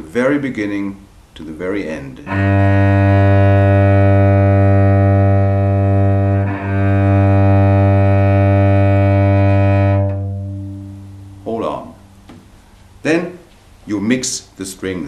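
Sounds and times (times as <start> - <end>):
cello low bowed note: 2.3 - 12.3.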